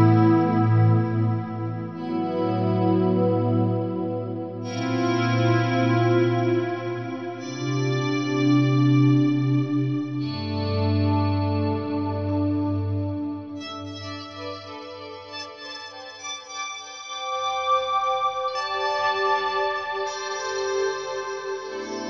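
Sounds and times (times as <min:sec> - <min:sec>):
clean electric guitar chords: 0:00.0 - 0:13.9.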